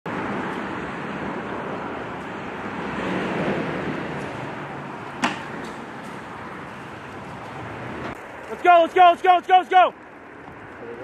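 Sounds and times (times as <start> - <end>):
road traffic rushing: 0.1 - 11.0.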